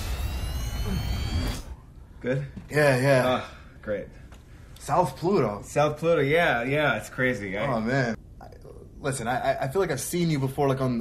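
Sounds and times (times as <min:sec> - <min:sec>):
rising whistling tones: 0:00.0 - 0:02.1.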